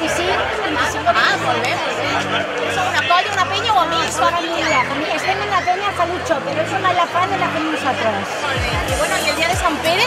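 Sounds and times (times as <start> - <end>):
background music: 0.0 - 10.0
women talking: 3.0 - 10.0.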